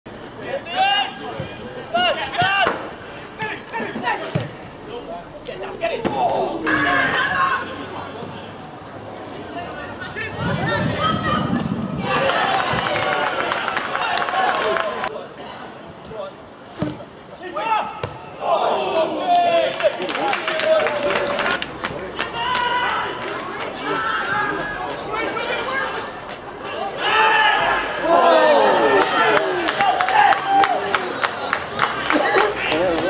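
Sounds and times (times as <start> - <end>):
players shouting: 5.6 - 8.2, 17.4 - 31.2.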